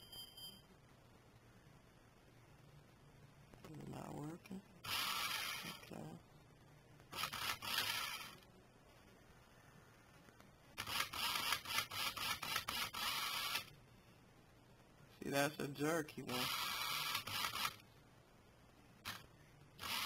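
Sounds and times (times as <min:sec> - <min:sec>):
toy car motor whirring: 0:04.8 - 0:05.8, 0:07.1 - 0:08.4, 0:10.8 - 0:13.7, 0:16.3 - 0:17.8, 0:19.8 - 0:20.0.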